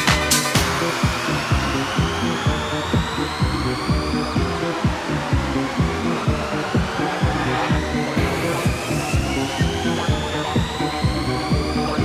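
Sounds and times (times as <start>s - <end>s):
hissing white-noise sweep: 0.0s - 12.0s
house music kick drum: 0.0s - 12.0s.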